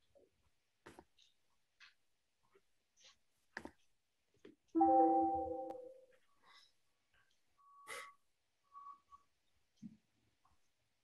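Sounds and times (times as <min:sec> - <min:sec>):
chime: 0:04.8 - 0:06.0
short high beep: 0:04.8 - 0:06.0.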